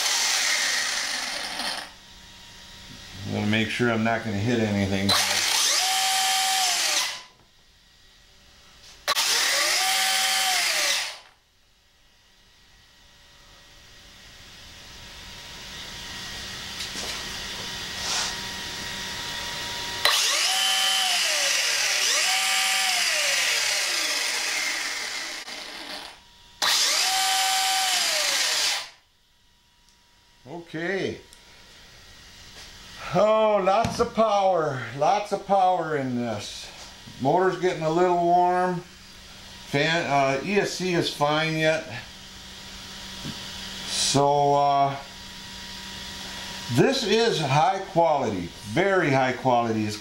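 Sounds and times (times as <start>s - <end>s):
electric motor whine revving: 0.0s - 3.5s, 4.3s - 7.4s, 9.0s - 11.4s, 15.3s - 29.0s.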